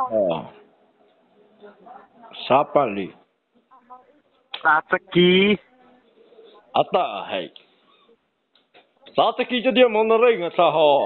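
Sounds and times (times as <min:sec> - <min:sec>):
person's voice over telephone: 0:04.6 - 0:05.6.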